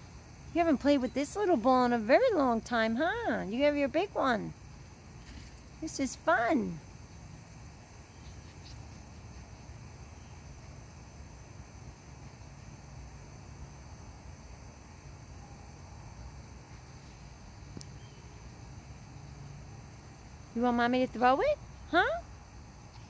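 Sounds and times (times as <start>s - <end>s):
insects chirring: 0.0s - 23.0s.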